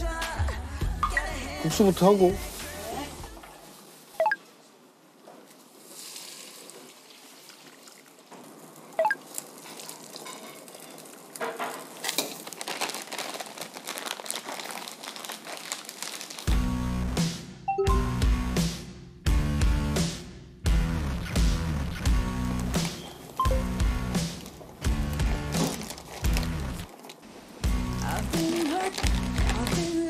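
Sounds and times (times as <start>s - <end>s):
music with beat and bass: 16.6s - 22.8s, 23.4s - 24.3s.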